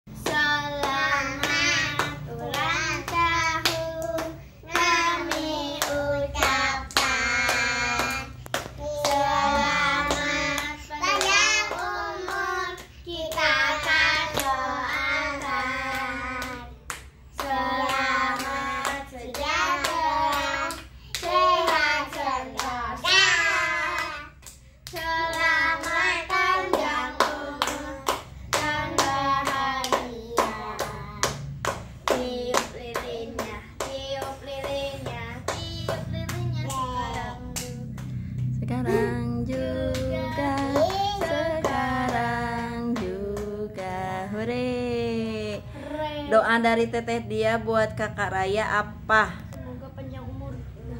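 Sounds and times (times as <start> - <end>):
children singing: 0.2 - 16.7.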